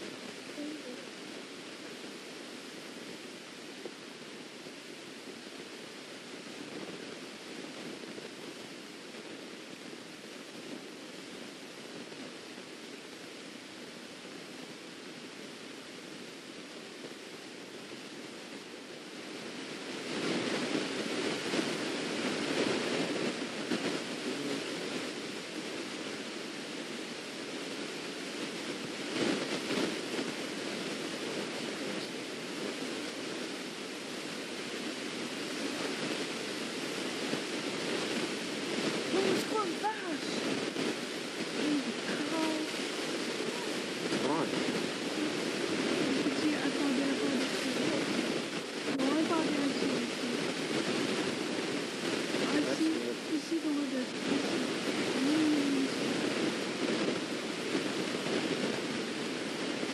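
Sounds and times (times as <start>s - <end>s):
steady rushing noise: 0.0s - 59.9s.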